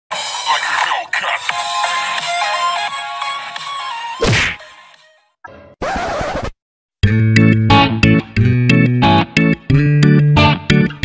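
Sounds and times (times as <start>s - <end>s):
upbeat intro music: 7.0s - 11.0s.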